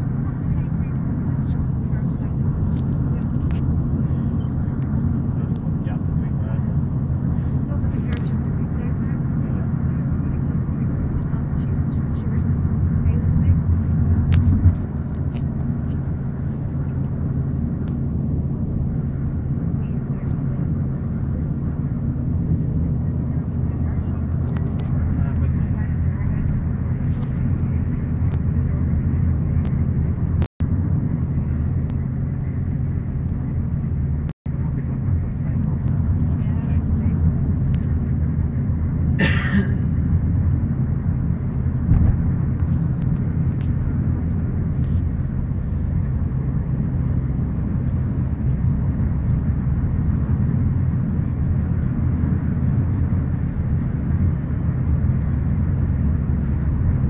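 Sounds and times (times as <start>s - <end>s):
car engine and road noise: 0.0s - 57.0s.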